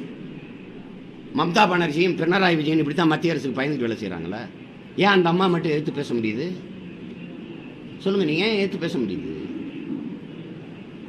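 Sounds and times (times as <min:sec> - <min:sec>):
crowded room background noise: 0:00.0 - 0:11.0
faint voices: 0:00.0 - 0:11.0.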